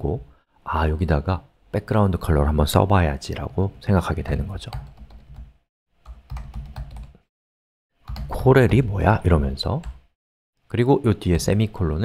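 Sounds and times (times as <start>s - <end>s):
computer keyboard typing: 4.7s - 7.2s, 8.1s - 8.8s.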